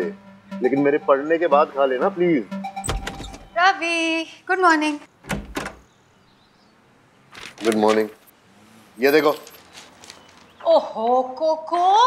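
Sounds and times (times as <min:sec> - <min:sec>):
wooden door shutting: 0:02.8 - 0:03.5, 0:05.2 - 0:05.9.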